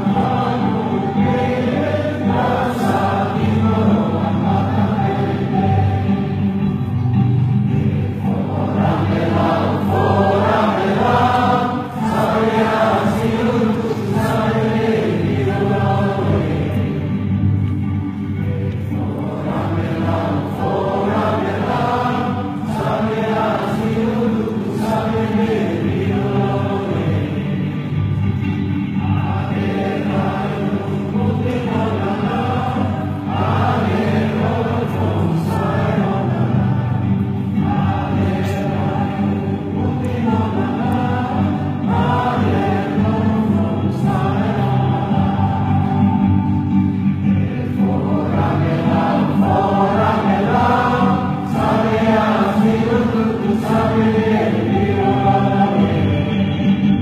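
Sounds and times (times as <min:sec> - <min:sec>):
crowd singing in unison: 0:00.0 - 0:57.0.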